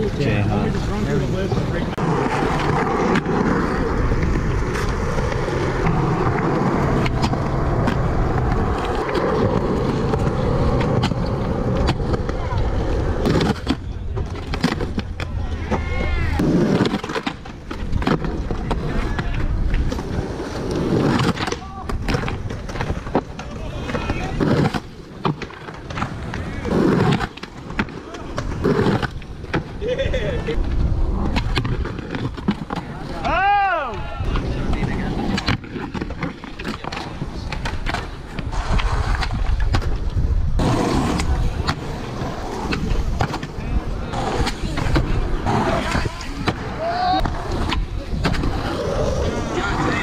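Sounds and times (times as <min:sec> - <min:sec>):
skateboard wheels rolling on concrete: 0:00.0 - 0:50.0.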